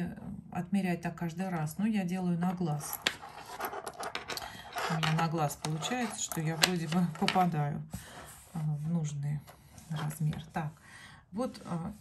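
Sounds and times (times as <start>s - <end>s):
necklace rustling when handled: 2.5s - 7.6s
faint breathing: 4.4s - 4.9s, 7.9s - 8.6s, 10.8s - 11.3s.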